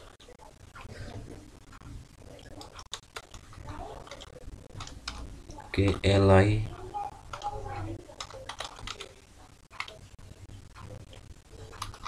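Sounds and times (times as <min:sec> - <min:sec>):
keyboard typing: 0:01.7 - 0:05.3, 0:06.7 - 0:12.0.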